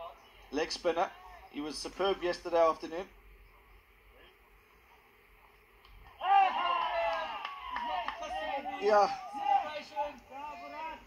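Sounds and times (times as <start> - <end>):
faint open-air hush: 0.0 - 11.0
players shouting: 6.0 - 11.0.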